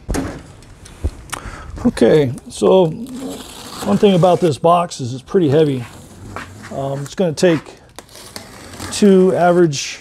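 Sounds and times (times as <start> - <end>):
man speaking: 1.8 - 5.9, 6.7 - 7.8, 8.9 - 10.0.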